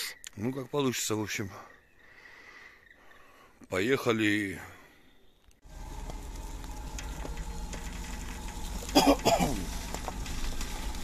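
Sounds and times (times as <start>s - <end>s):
vehicle engine running at low speed: 5.6s - 11.0s.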